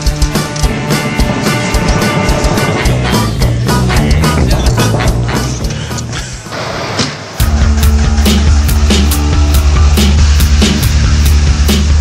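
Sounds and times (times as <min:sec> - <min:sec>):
music with heavy bass and beat: 0:00.0 - 0:06.5, 0:07.3 - 0:12.0.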